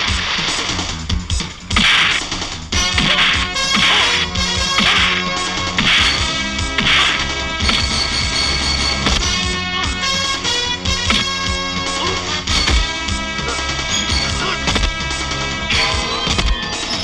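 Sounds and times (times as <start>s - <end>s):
dramatic film score: 0.0s - 17.0s
punch and swish sound effects: 1.7s - 2.3s, 2.9s - 4.2s, 5.8s - 7.9s.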